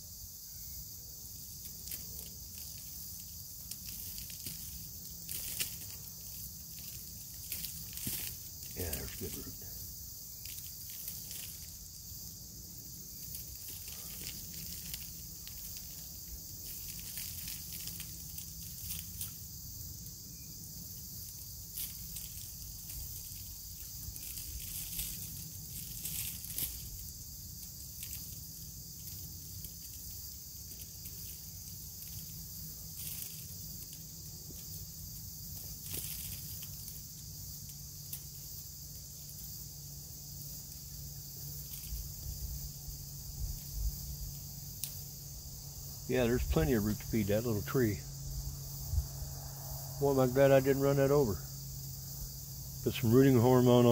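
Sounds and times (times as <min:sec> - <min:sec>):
crickets chirping: 0:00.0 - 0:53.9
hands rustling soil: 0:00.9 - 0:49.2.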